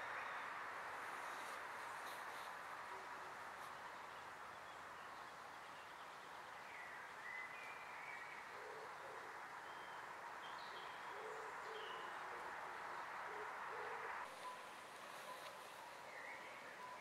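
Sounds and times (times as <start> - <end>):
bird cooing call: 8.4 - 10.0, 10.8 - 12.6, 13.2 - 17.0.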